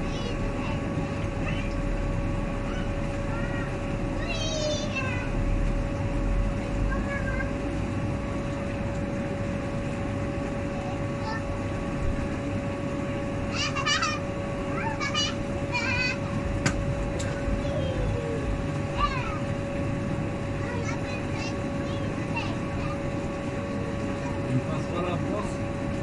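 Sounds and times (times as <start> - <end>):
steady hum: 0.0 - 26.0.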